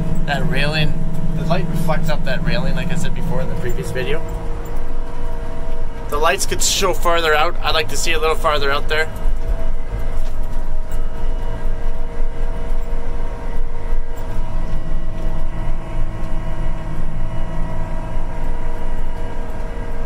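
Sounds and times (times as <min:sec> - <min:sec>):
crop sprayer machine drone: 0:00.0 - 0:20.0.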